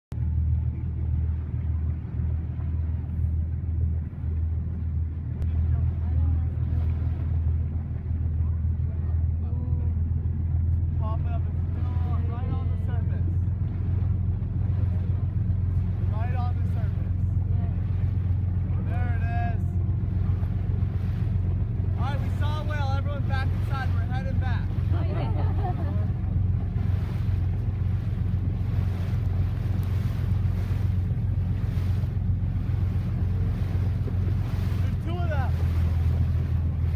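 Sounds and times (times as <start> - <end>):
boat engine droning: 0.1 - 36.9
faint voices talking: 5.4 - 24.9.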